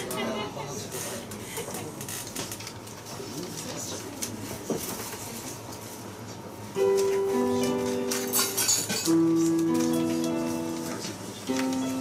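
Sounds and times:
soft voices talking quietly: 0:00.0 - 0:06.5.

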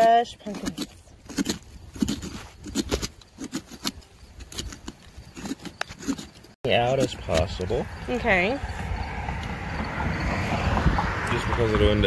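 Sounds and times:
scoop scraping inside pumpkin: 0:00.0 - 0:07.5.

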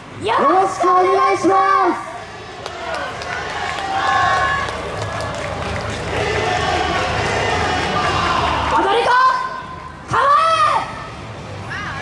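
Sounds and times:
crowd voices: 0:00.0 - 0:12.0
loud shouted calls: 0:01.3 - 0:11.0.

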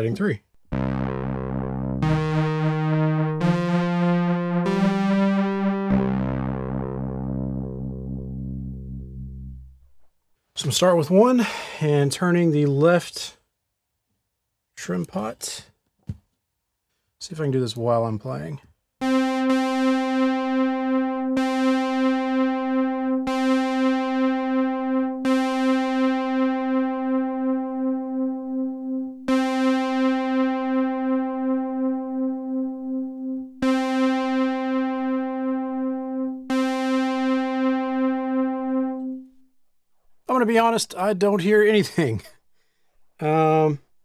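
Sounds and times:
synthesizer note with chorus effect: 0:00.6 - 0:10.0, 0:19.0 - 0:39.5.

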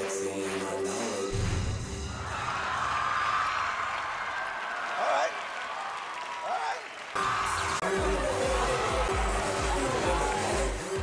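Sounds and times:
audience clapping and cheering: 0:00.0 - 0:11.0
low music beat: 0:07.2 - 0:11.0.

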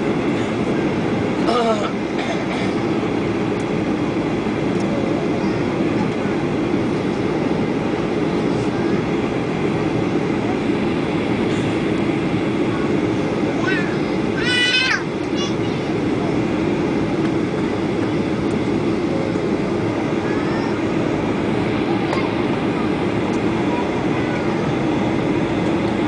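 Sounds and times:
airliner cabin engine rumble: 0:00.0 - 0:26.0.

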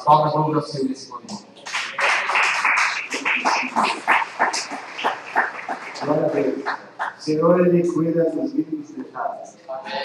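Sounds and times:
congregation applauding: 0:01.6 - 0:07.3.

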